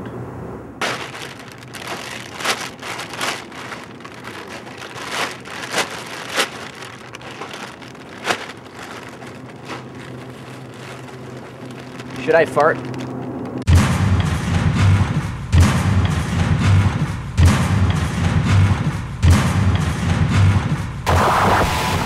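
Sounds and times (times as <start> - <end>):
plastic bags rustling and crinkling: 0.8 - 13.7.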